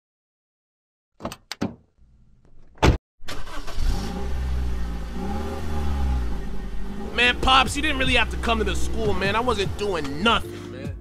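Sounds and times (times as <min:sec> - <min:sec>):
car engine starting and revving: 0:03.2 - 0:10.4.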